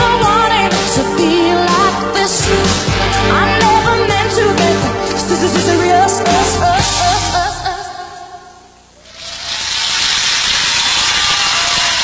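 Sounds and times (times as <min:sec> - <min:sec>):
person singing with backing music: 0:00.0 - 0:08.5
audience applause: 0:09.1 - 0:12.0.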